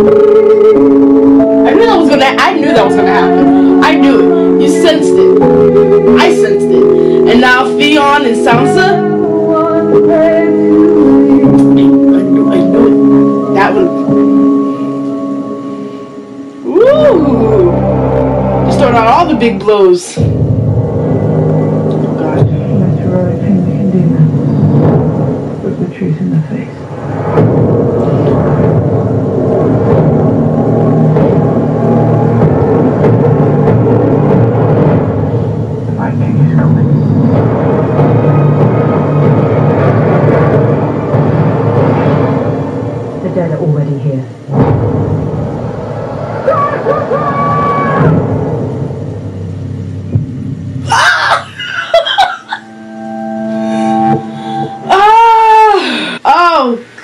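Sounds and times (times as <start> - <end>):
orchestral music: 0.0 - 25.7, 26.8 - 43.5, 51.9 - 56.1
long steady tone: 0.0 - 50.9, 51.6 - 56.7
low rumble: 0.0 - 56.4
dramatic television soundtrack: 0.0 - 57.0.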